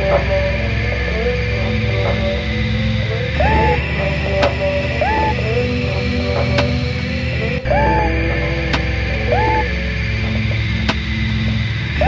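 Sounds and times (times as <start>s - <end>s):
hip-hop instrumental beat: 0.0s - 12.0s
low bass: 0.0s - 12.0s
sliding pitched figure: 3.0s - 12.0s.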